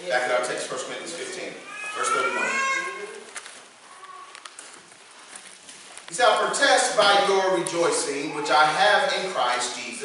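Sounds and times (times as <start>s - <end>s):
man preaching tearfully: 1.2s - 3.2s, 6.1s - 10.0s.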